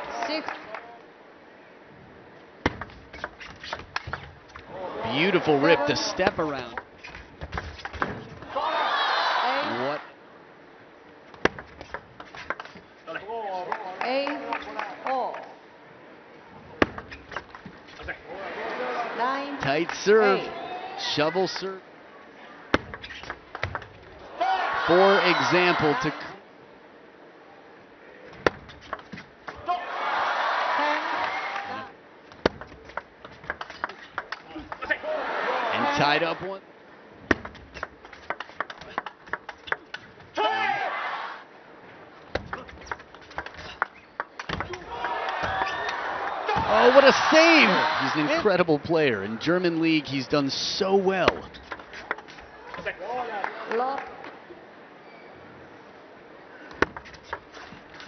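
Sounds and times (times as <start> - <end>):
arena crowd noise: 0.0 - 2.6, 4.6 - 6.8, 8.4 - 11.5, 13.0 - 17.1, 18.0 - 28.6, 29.4 - 32.4, 34.4 - 37.2, 40.2 - 42.9, 44.2 - 57.0.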